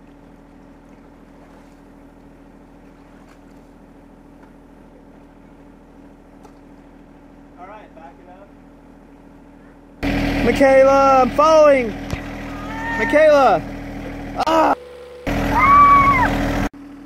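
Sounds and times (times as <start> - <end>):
tractor diesel engine idling: 3.8 - 17.0.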